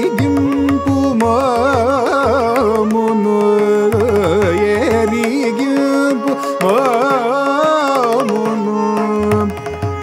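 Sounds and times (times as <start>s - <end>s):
mridangam drum strokes: 0.0s - 10.0s.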